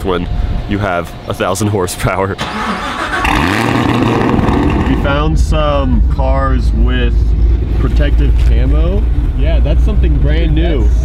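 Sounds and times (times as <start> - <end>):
car engine revving: 2.4 - 11.0.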